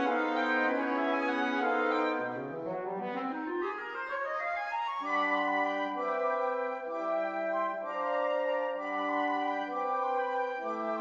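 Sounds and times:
woodwind quintet rising run: 0.0 - 11.0.

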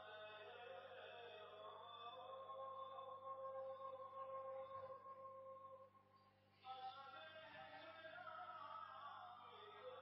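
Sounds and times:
faint devotional singing: 0.0 - 5.8, 6.6 - 10.0.

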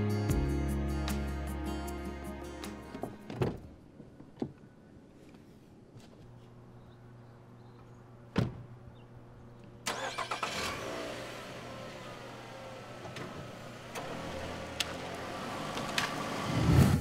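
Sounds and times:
car engine starting and idling: 9.8 - 17.0.

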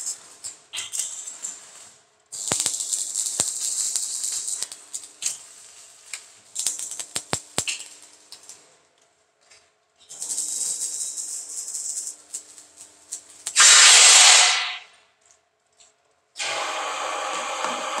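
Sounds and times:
arc welding crackling hiss: 0.0 - 8.7, 10.0 - 14.9, 16.4 - 18.0.

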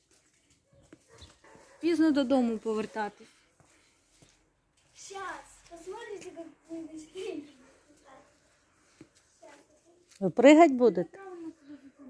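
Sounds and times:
woman speaking: 1.8 - 3.3, 10.2 - 12.0.

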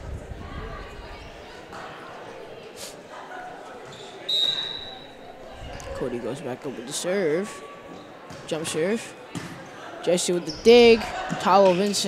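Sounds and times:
murmur of voices: 0.0 - 12.0
referee's whistle blast: 4.3 - 5.2.

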